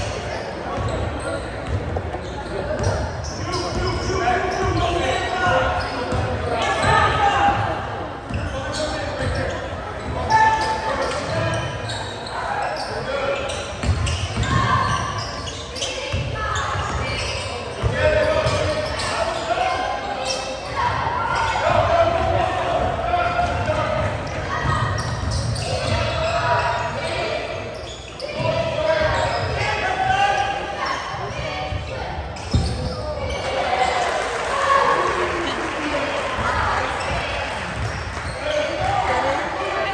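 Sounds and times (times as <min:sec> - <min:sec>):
spectators' voices and shouts: 0:00.0 - 0:39.9.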